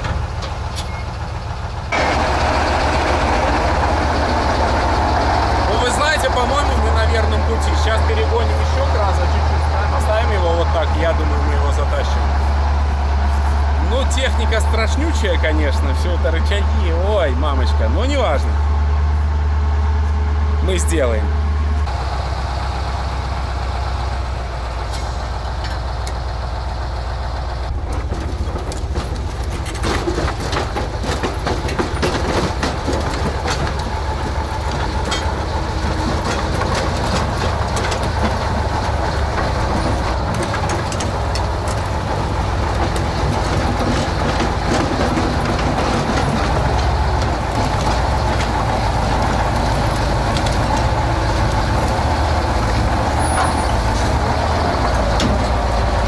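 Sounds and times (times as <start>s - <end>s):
metallic clanks of steel tracks: 0.0s - 18.6s, 24.0s - 56.0s
truck diesel engine under load: 0.0s - 56.0s.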